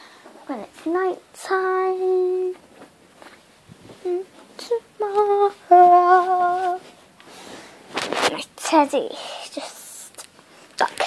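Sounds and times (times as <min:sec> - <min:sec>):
girl humming: 0:04.0 - 0:06.8.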